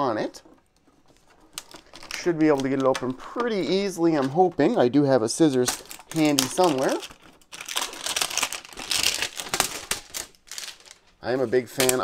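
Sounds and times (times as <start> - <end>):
plastic shrink wrap crinkling: 0.0 - 12.0.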